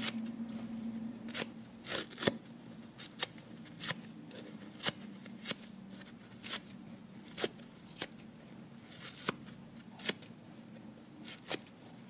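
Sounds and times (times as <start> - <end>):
sponge foam ripping: 1.3 - 2.4.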